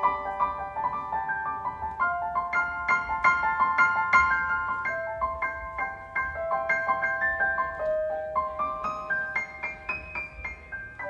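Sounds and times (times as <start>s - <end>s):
piano melody of ringing notes: 0.0s - 11.0s.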